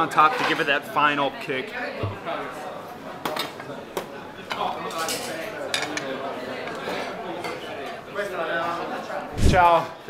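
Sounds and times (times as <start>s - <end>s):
plates and utensils clattering: 0.1s - 0.8s, 4.4s - 8.0s.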